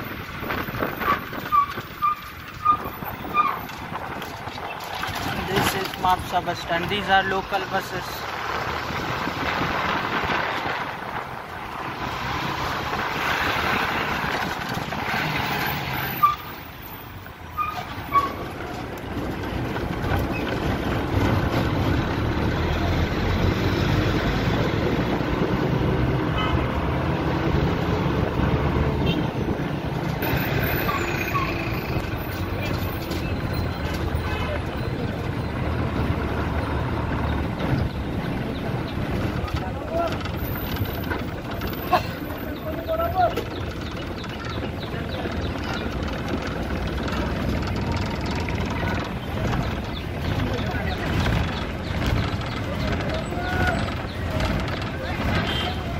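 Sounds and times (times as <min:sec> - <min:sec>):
bus engines rumbling: 0:00.0 - 0:55.9.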